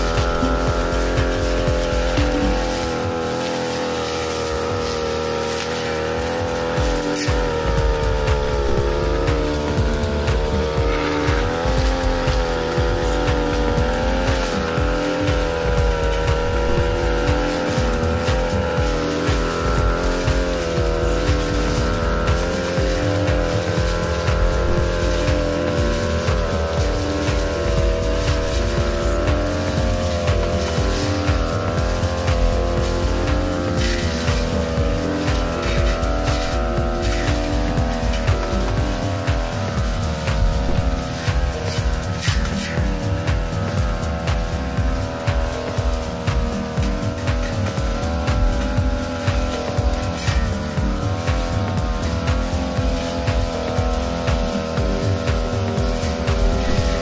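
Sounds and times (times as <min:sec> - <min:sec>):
brush cutter engine at high revs: 0:00.0 - 0:57.0.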